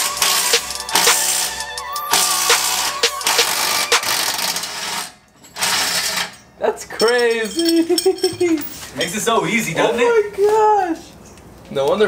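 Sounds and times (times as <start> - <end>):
impact wrench hammering: 0.0 - 1.5, 2.1 - 6.4, 7.0 - 8.7
background music with beat: 0.0 - 4.5.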